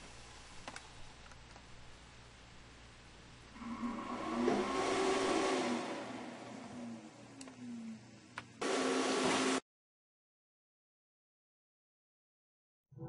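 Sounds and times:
vinyl cutter motors whirring: 3.6s - 9.6s.

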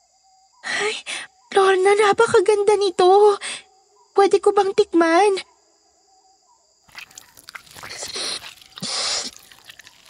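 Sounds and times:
wet mouth licking sounds: 6.9s - 10.0s
breathy exhales: 7.8s - 9.6s.

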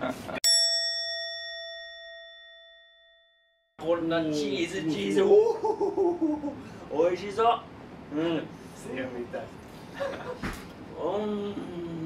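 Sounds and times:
bell-like chime ringing: 0.4s - 3.8s.

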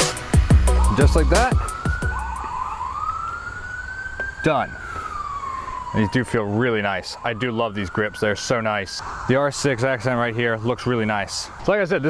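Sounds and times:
siren wailing: 0.3s - 12.0s.

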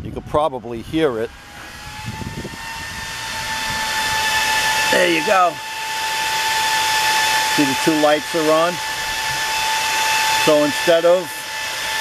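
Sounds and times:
electric cooling fans whirring: 0.0s - 12.0s.

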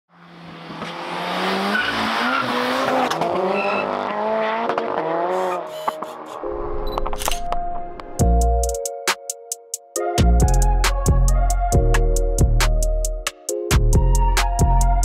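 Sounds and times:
music with deep bass: 8.2s - 15.0s.

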